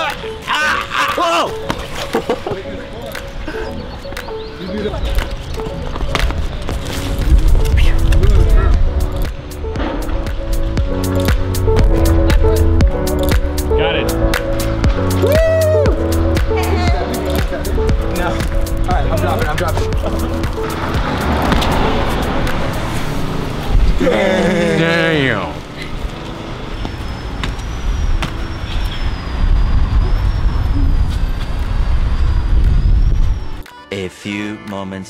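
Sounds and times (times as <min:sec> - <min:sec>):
upbeat music with heavy bass: 0:06.8 - 0:25.5.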